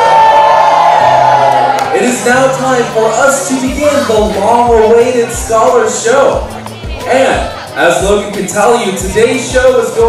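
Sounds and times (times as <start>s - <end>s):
audience cheering: 0.0s - 4.3s
voice whooping: 0.0s - 4.5s
music playing: 0.0s - 10.0s.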